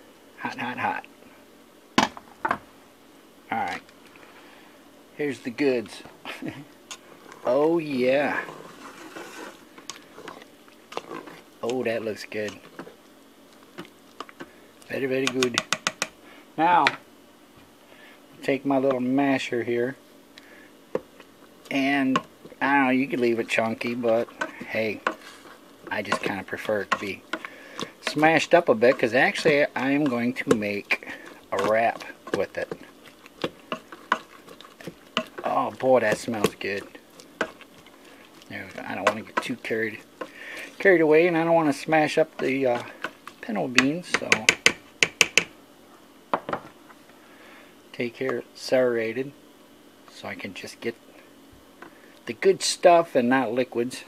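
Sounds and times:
soft wet stirring: 6.8 - 45.5
masher squelching in metal pot: 8.4 - 11.7, 22.9 - 41.0
utensil clicking against pot: 15.2 - 16.2, 25.9 - 37.7, 42.4 - 45.5.

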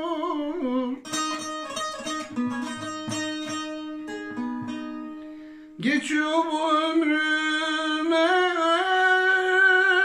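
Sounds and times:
plucked long-necked lute melody: 0.0 - 5.6.

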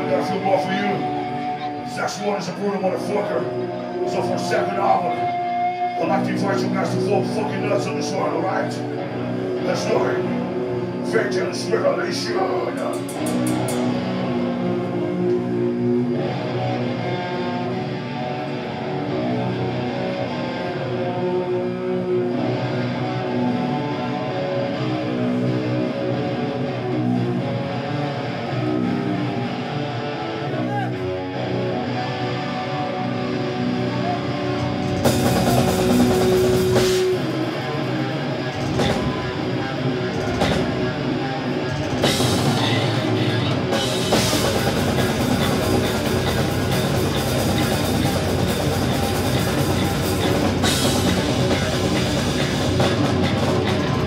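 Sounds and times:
bass guitar riffing: 0.0 - 54.0
distorted electric guitar riffing: 0.0 - 54.0
drums: 0.0 - 54.0.

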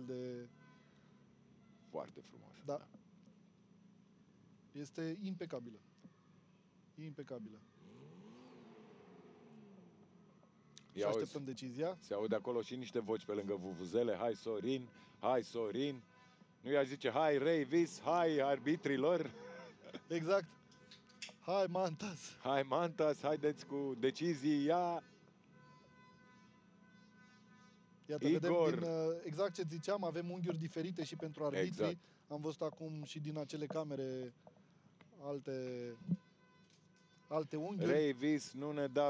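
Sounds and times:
faint car engine revving: 0.0 - 36.3.

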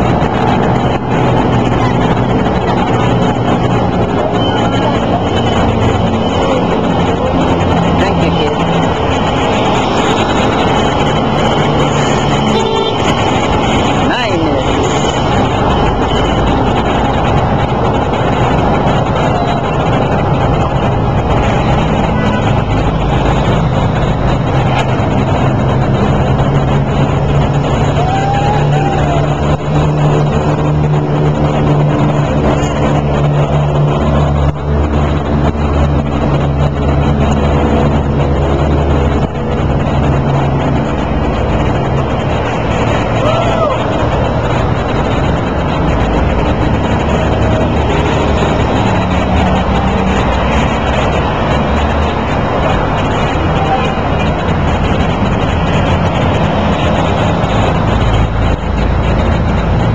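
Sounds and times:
low engine hum: 0.0 - 59.9
road traffic noise: 0.0 - 59.9.

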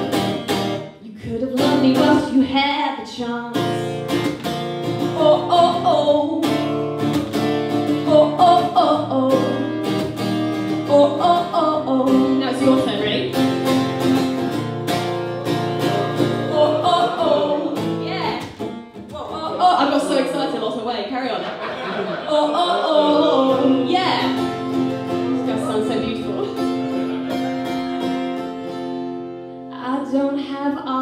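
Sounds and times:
acoustic guitar strumming chords: 0.0 - 2.7, 3.6 - 20.5, 22.3 - 29.8.

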